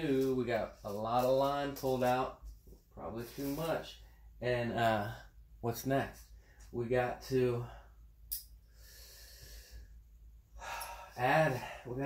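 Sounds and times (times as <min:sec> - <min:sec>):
man breathing: 0:07.6 - 0:12.0.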